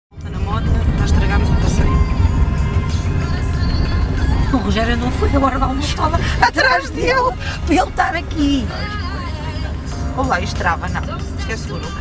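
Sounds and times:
low rumble: 0:00.1 - 0:12.0
indistinct voices: 0:00.2 - 0:12.0.

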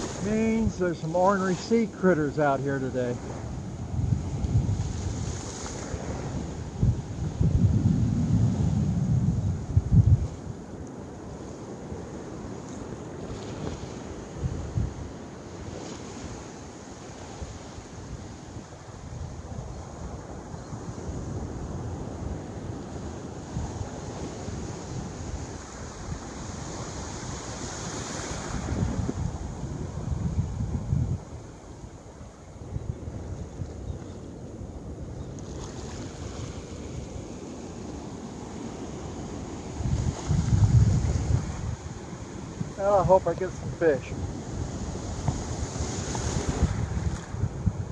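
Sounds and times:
surf breaking on a beach: 0:00.0 - 0:47.9
wind buffeting microphone: 0:00.0 - 0:47.9.

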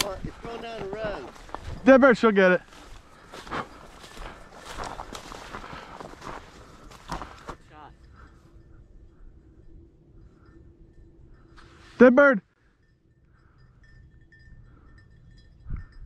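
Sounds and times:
footsteps through dry grass: 0:00.0 - 0:07.8.

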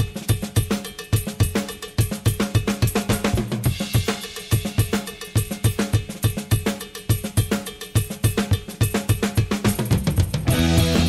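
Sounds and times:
drum kit playing rock beat: 0:00.0 - 0:11.0.

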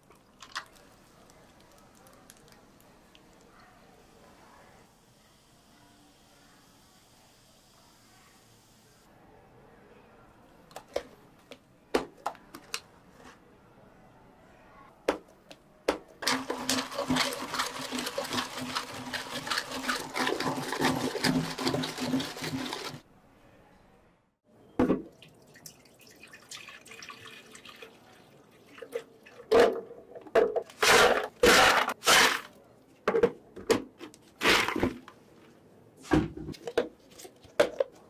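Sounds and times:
ice clattering into jar: 0:16.2 - 0:23.0, 0:30.8 - 0:32.5
milk pouring into blender jar: 0:16.2 - 0:23.0.

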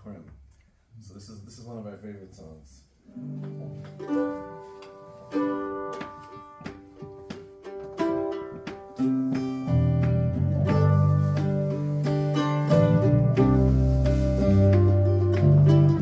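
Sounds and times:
acoustic guitar picking: 0:03.1 - 0:16.0
mandolin picking melody: 0:03.1 - 0:16.0.

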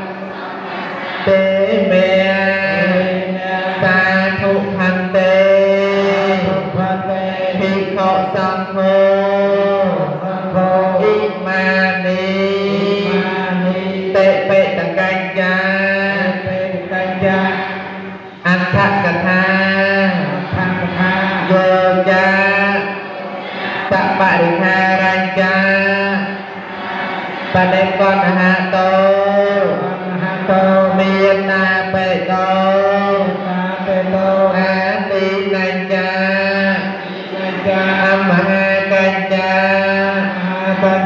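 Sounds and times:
chanting in held notes: 0:00.0 - 0:31.4, 0:36.2 - 0:41.0.

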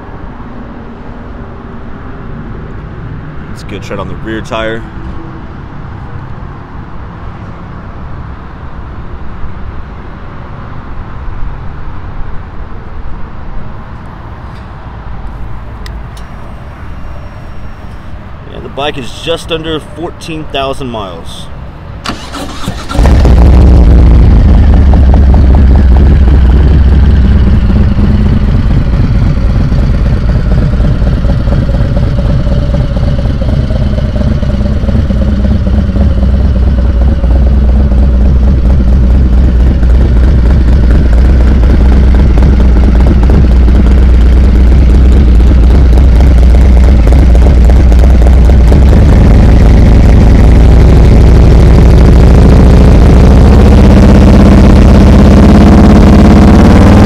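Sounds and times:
motorcycle engine idling: 0:22.1 - 0:57.0.

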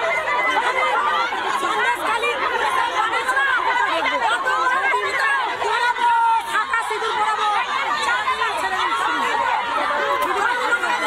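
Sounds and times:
crowd of women shouting: 0:00.0 - 0:11.0.

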